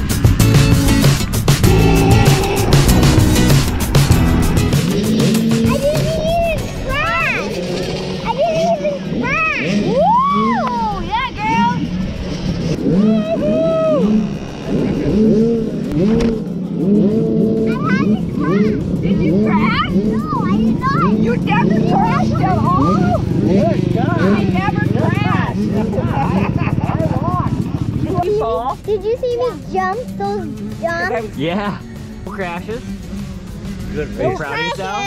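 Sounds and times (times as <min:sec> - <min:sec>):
steady low engine note: 0:00.0 - 0:09.3
motocross bike engines revving: 0:00.0 - 0:35.0.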